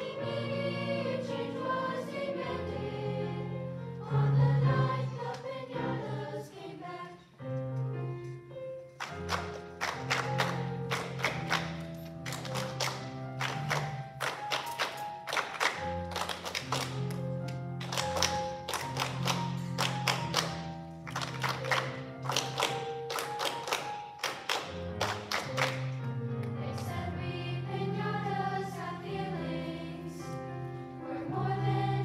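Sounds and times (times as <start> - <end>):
choir singing sustained chords: 0.0 - 7.5, 26.6 - 32.0.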